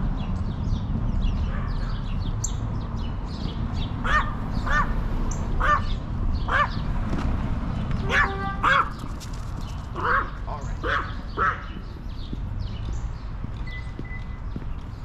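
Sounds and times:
low rumble of street noise: 0.0s - 15.0s
bird calling: 4.0s - 6.9s, 7.9s - 9.0s, 9.9s - 12.0s.

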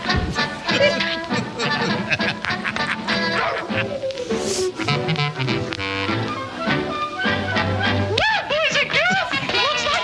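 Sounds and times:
swing jazz with brass horns: 0.0s - 8.2s.

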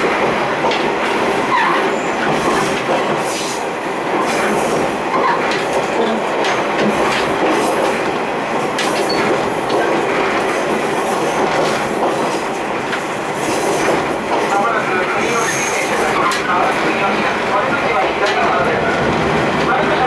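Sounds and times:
gangway plates rattling and clanking: 0.0s - 20.0s.

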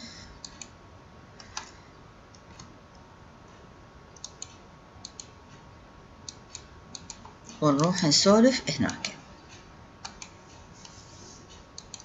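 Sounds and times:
computer mouse clicks: 0.4s - 0.8s, 1.4s - 3.0s, 4.2s - 5.4s, 6.2s - 8.0s, 10.0s - 11.0s, 11.8s - 12.0s.

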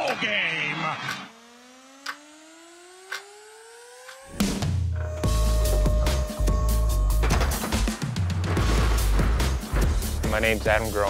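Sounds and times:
rising synthesized tone: 1.3s - 7.4s
sharp clock ticks: 2.0s - 2.4s, 3.0s - 4.3s.

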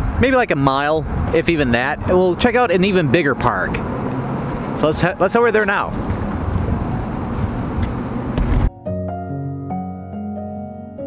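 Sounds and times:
wind buffeting microphone: 0.0s - 8.7s
soft instrumental music: 6.9s - 11.0s.

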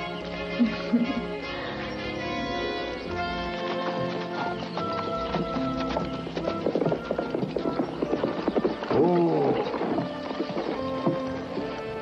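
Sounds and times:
background music score: 0.0s - 12.0s
horse hoofbeats clip-clopping: 3.0s - 12.0s.

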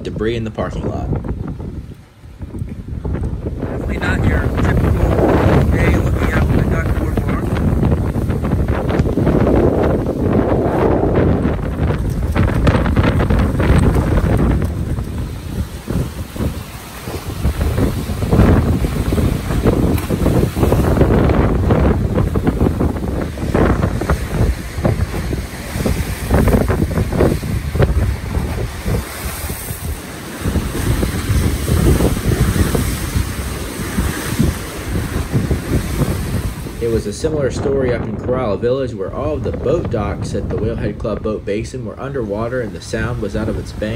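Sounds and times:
choppy water splashing: 0.0s - 43.9s
wind buffeting microphone: 0.0s - 43.9s.

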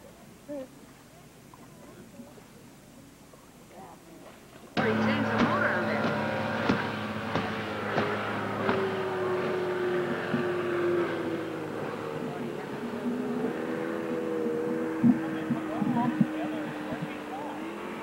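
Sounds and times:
outboard engine running at speed: 3.3s - 18.0s.

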